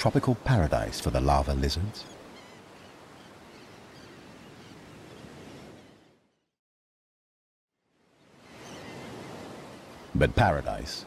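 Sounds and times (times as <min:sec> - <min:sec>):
surf on rocky shore: 0:08.3 - 0:11.0.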